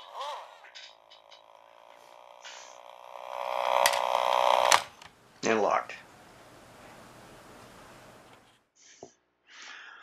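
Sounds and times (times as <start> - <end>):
toy car electric motor whine: 0.0 - 5.0.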